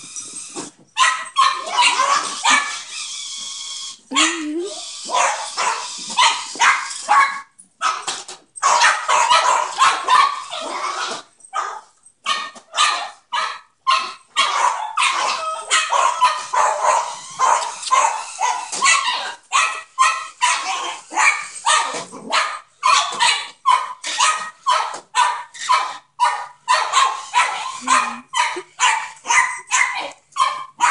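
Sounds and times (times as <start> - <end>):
small dogs yapping: 0.4 - 30.9.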